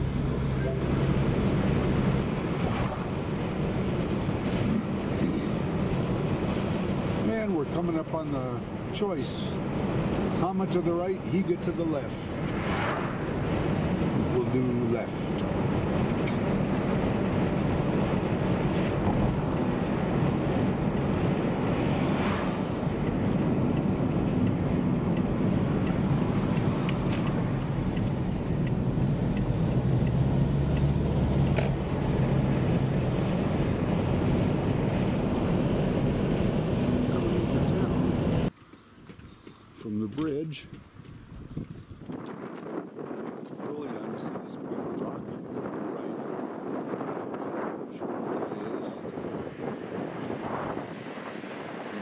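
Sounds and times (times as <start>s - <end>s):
car engine and tyre drone: 0.0s - 40.0s, 45.0s - 52.0s.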